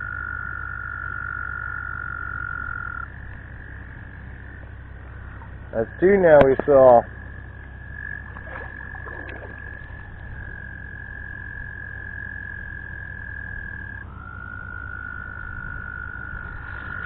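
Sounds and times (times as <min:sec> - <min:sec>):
toads trilling: 0:00.0 - 0:17.0.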